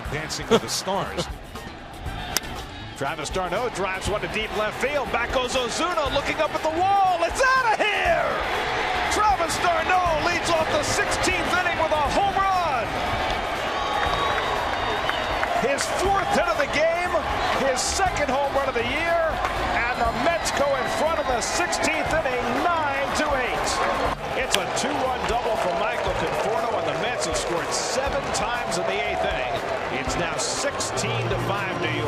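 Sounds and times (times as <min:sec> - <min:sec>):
crowd cheering: 0:00.0 - 0:32.0
sharp claps: 0:08.5 - 0:16.8, 0:21.6 - 0:30.9.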